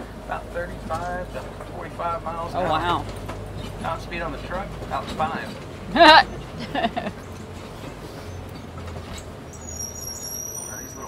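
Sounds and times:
truck engine running low: 0.0 - 11.0.

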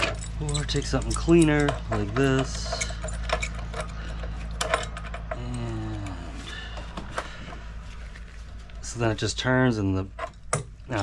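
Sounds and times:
hand tool clinking on metal: 0.0 - 5.8
steady low hum: 0.0 - 11.0.

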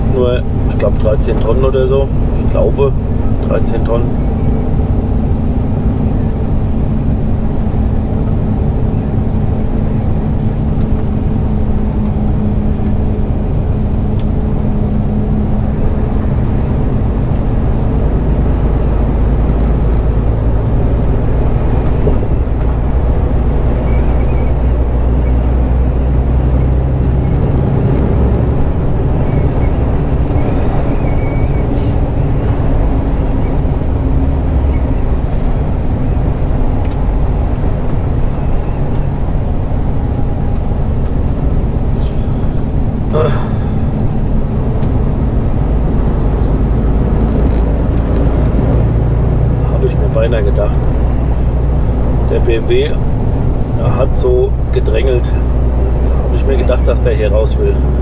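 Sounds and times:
road noise: 0.0 - 58.0
truck diesel engine droning: 0.0 - 58.0.

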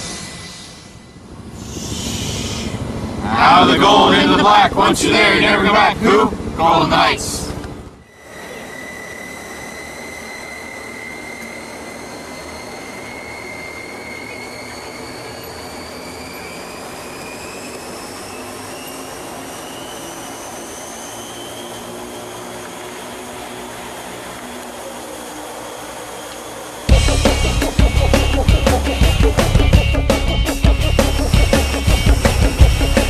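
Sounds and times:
aircraft engine drone in cabin: 0.0 - 33.0
high turbine whine: 0.0 - 33.0.

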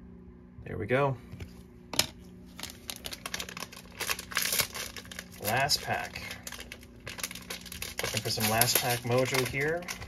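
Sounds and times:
packaging crinkling and rustling: 2.0 - 10.0.

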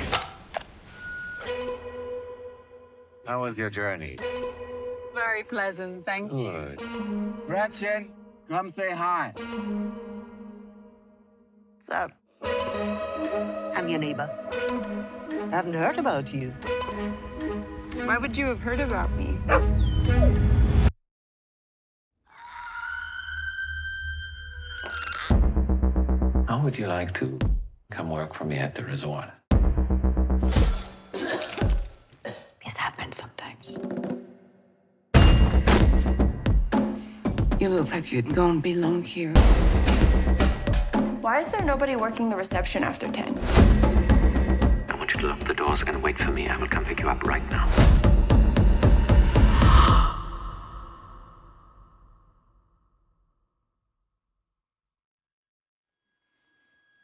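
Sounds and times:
high ringing tone: 0.2 - 1.7.

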